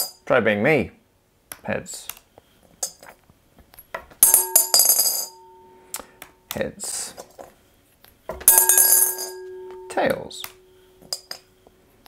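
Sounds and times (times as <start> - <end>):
coin clattering in glass bowl: 4.2 - 5.4, 8.5 - 9.5
glass bowl ringing: 4.2 - 5.9, 8.5 - 11.4.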